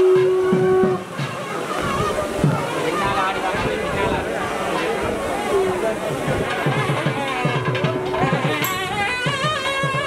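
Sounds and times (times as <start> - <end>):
festival crowd voices: 0.0 - 10.0
traditional temple music: 0.0 - 10.0.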